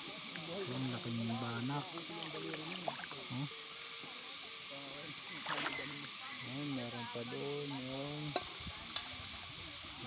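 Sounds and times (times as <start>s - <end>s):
running river water: 0.0s - 10.0s.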